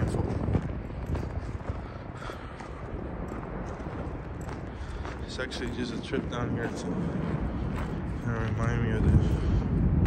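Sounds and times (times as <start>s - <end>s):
footsteps on dirt and gravel: 0.0s - 10.0s
steady low rumble: 0.0s - 10.0s.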